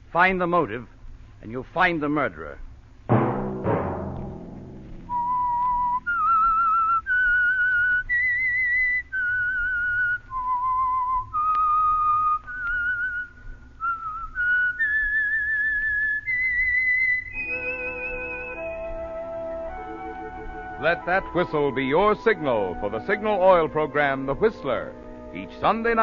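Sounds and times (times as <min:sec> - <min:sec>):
faint musical backing: 0:00.0 - 0:26.0
person whistling a slow melody: 0:05.1 - 0:23.3.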